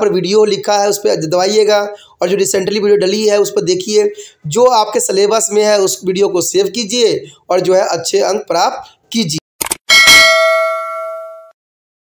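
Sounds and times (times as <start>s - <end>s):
bell-like ding: 9.9s - 11.6s.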